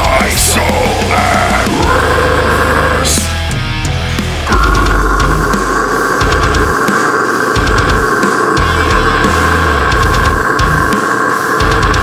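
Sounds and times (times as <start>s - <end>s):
drums and low bass hits: 0.0s - 11.0s, 11.6s - 12.0s
heavily distorted guitars: 0.0s - 12.0s.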